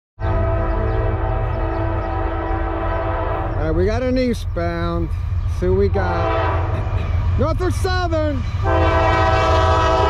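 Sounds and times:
locomotive air horn: 0.2s - 3.6s, 6.1s - 7.1s, 8.6s - 10.0s
train rumbling: 0.2s - 10.0s.

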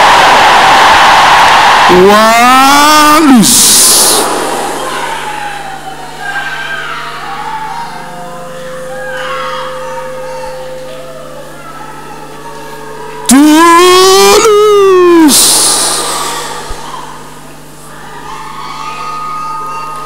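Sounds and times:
person crying out: 1.9s - 4.4s, 13.3s - 17.0s
steady low hum: 2.7s - 6.3s, 12.2s - 18.2s.

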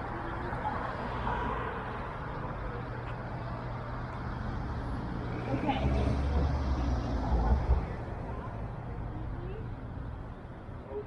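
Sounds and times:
passing cars drone: 0.0s - 11.0s
vehicle rumble: 0.0s - 11.0s.

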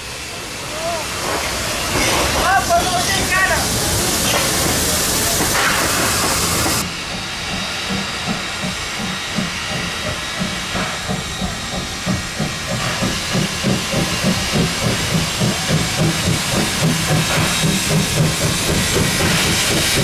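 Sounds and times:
locomotive hissing steam: 0.0s - 20.0s
locomotive exhaust chuffing: 0.1s - 20.0s.

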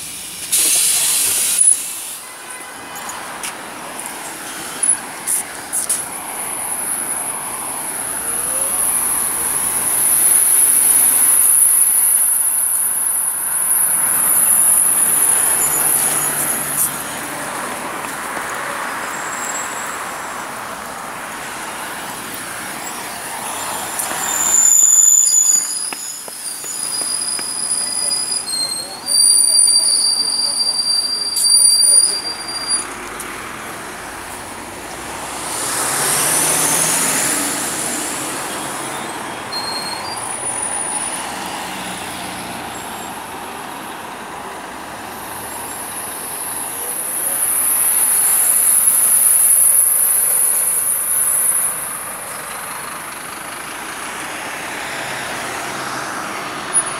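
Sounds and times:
vehicles passing on road: 0.0s - 56.9s
high thin whistling tones: 23.6s - 32.8s.

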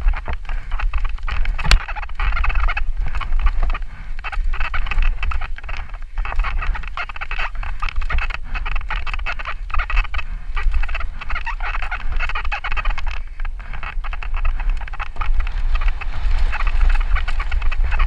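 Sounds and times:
bike tyres on rocky trail: 0.0s - 18.0s
wind rumble on microphone: 0.0s - 18.0s.

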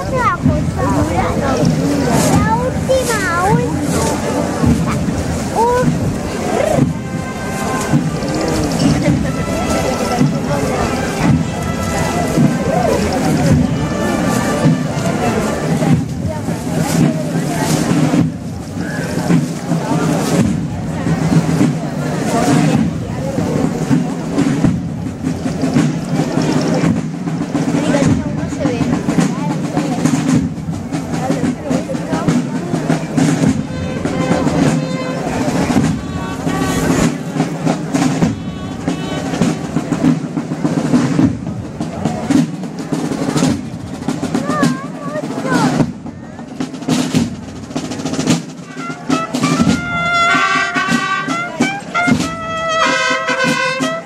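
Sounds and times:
side drums beating march: 0.0s - 54.0s
trumpets playing melody: 3.8s - 17.1s, 33.2s - 41.0s, 48.6s - 54.0s.

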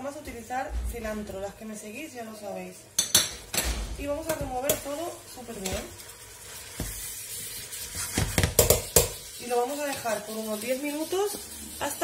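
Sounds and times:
spatula stirring food in pot: 4.3s - 12.0s
spatula knocking metal pot: 8.2s - 9.2s.

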